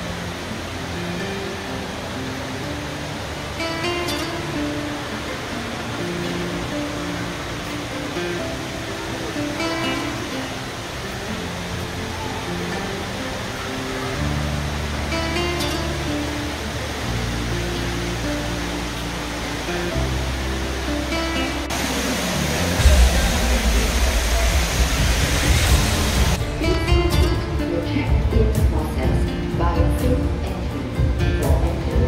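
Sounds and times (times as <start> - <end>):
steady rushing noise: 0.0 - 29.5
music of sustained notes: 0.0 - 32.0
deep bass: 21.7 - 32.0.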